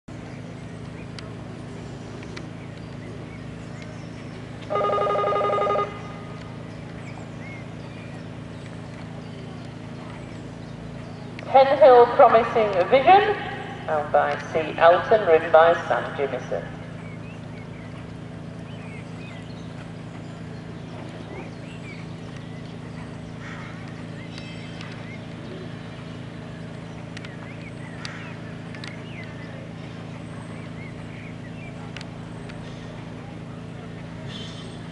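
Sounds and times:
steady low hum: 0:00.1 - 0:34.9
electric bell ringing: 0:04.7 - 0:06.2.

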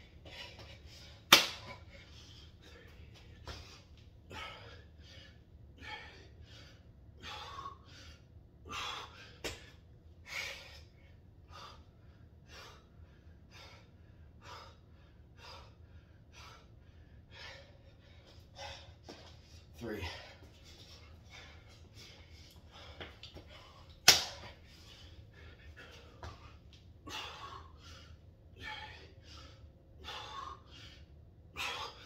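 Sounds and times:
man panting hard: 0:00.0 - 0:32.0.

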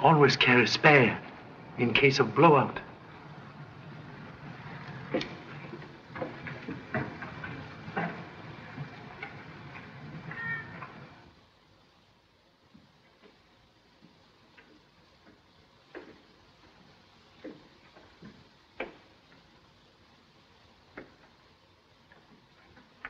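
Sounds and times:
film soundtrack hiss: 0:00.0 - 0:23.0.

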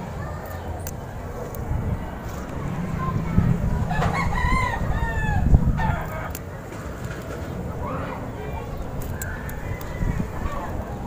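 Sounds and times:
low handling noise rumble: 0:00.8 - 0:11.0
bump: 0:01.6 - 0:06.2
rooster crowing: 0:03.7 - 0:06.3, 0:09.2 - 0:10.8.

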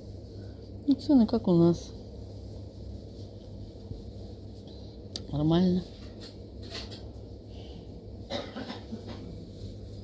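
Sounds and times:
steady low hum: 0:00.0 - 0:10.0
person coughing: 0:08.3 - 0:09.4.

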